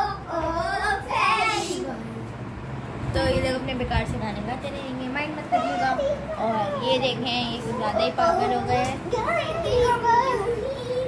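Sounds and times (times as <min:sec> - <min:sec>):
young children chattering: 0:00.0 - 0:02.4, 0:03.1 - 0:11.0.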